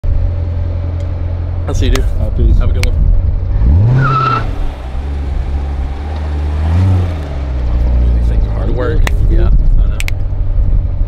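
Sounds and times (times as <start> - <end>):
car engine idling and revving: 0.0 - 11.0.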